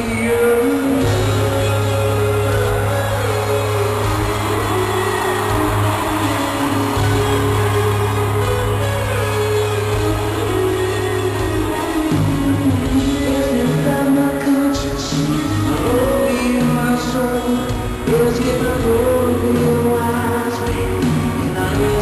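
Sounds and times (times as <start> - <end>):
live rock band playing: 0.0 - 22.0
long held bass notes: 0.0 - 22.0
singing: 0.0 - 22.0.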